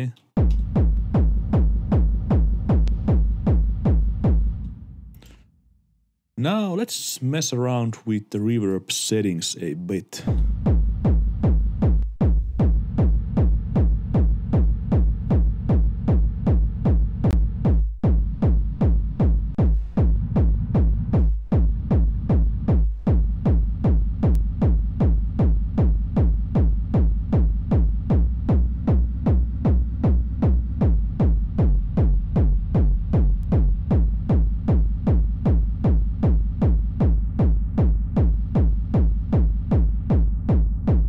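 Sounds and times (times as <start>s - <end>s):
distorted kick drum: 0.0s - 5.0s, 10.2s - 41.0s.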